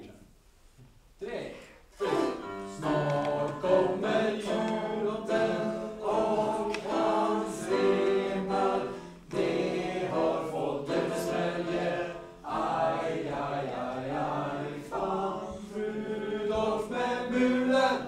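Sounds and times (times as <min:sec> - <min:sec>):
young voices singing unaccompanied: 0:02.7 - 0:18.0.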